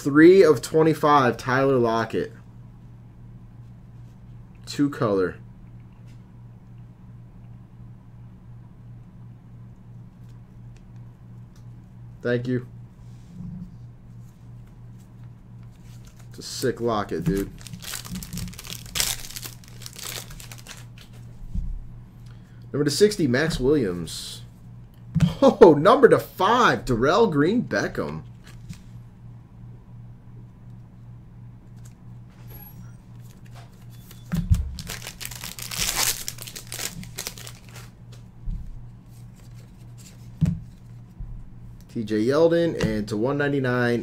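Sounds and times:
low steady hum: 0:00.0 - 0:44.0
plastic card sleeves crinkling: 0:15.0 - 0:21.3, 0:28.3 - 0:29.0, 0:33.1 - 0:38.2, 0:39.0 - 0:41.0.

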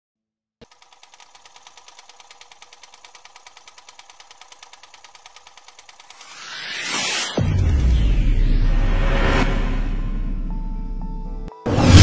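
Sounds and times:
faint rapid clicking: 0:00.6 - 0:06.5.

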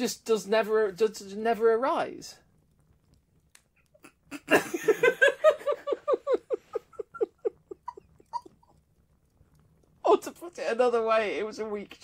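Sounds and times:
person laughing: 0:04.0 - 0:08.6.

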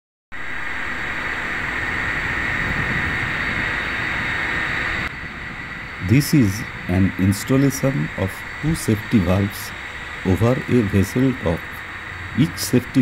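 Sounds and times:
industrial plant rushing din: 0:00.4 - 0:13.0.

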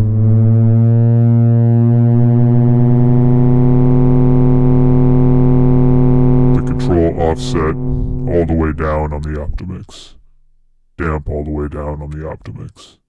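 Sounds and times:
low buzzy synthesizer tone: 0:00.0 - 0:12.0.

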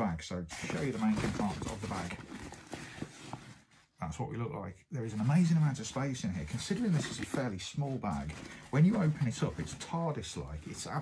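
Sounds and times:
nylon bag rustling: 0:00.5 - 0:03.7, 0:05.2 - 0:11.0.

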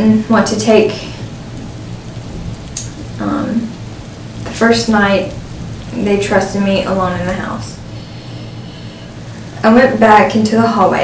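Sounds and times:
steady rain hiss: 0:00.0 - 0:11.0
person narrating: 0:05.9 - 0:07.8.

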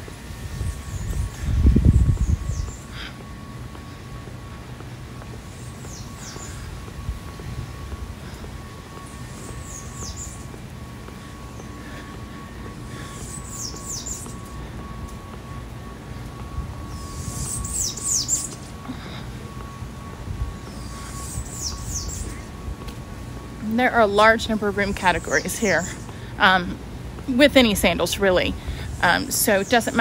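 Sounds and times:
faint steady hum: 0:00.0 - 0:30.0
bird calling with falling notes: 0:16.9 - 0:18.8.

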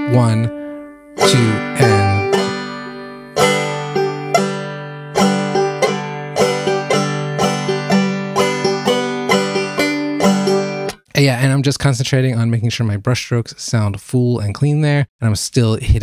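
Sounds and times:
banjo picking: 0:00.0 - 0:11.0.

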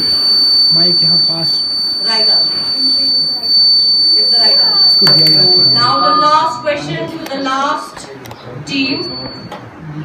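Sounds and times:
high-pitched electronic whine: 0:00.0 - 0:07.0.

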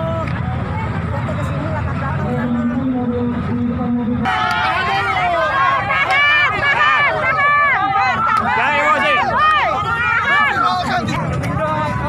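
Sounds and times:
crowd shouting and yelling: 0:00.0 - 0:12.0.

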